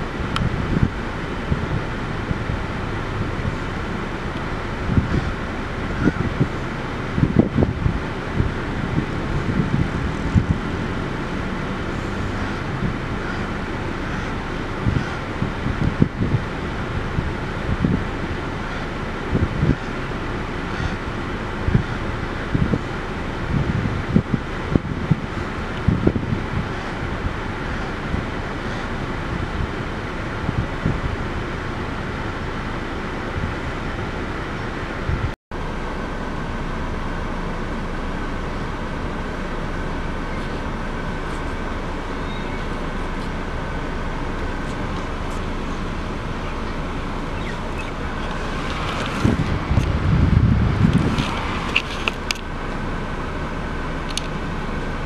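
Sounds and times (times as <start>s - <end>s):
low background rumble: 0.0s - 55.0s
wind buffeting microphone: 0.0s - 55.0s.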